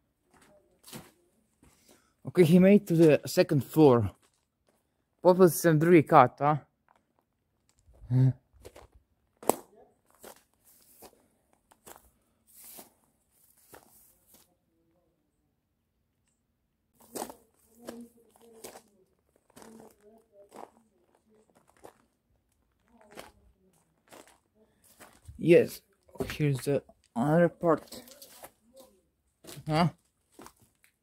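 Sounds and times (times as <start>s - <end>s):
footsteps crunching on rubble: 0.3s - 3.3s, 4.0s - 5.1s, 6.8s - 14.5s, 16.9s - 31.0s.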